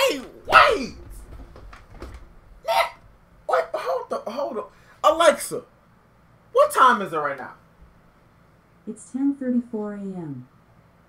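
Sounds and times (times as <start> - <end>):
breathing: 4.7 - 5.0.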